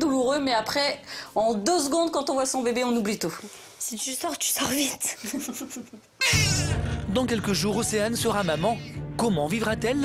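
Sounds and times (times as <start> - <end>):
newborn baby crying: 6.2 - 6.8
background music: 6.2 - 10.0.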